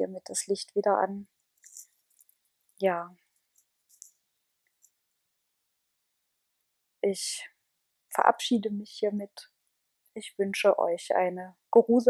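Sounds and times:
woman speaking: 10.5s - 12.0s.

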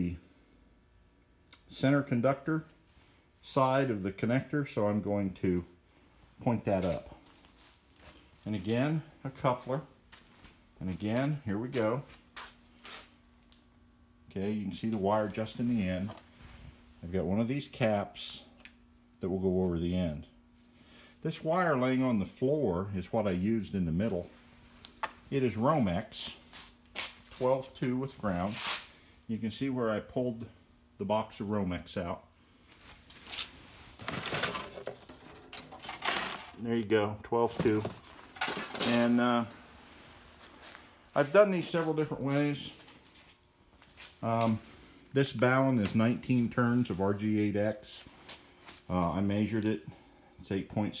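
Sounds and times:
faint steady hum: 0.0s - 51.0s
soft rustling: 32.6s - 34.4s
cardboard and cable rustling: 32.7s - 36.6s, 37.4s - 39.2s.

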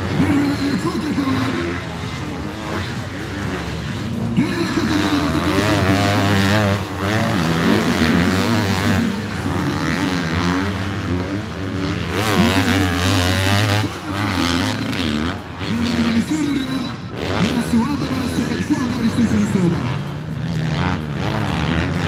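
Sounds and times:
motocross bike engines revving: 0.0s - 22.0s.

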